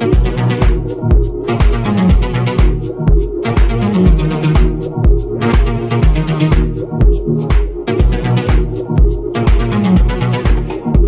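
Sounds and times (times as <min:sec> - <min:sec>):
hi-hats: 0:00.0 - 0:11.0
steady kick drum: 0:00.0 - 0:11.0
tech house dj mix: 0:00.0 - 0:11.0.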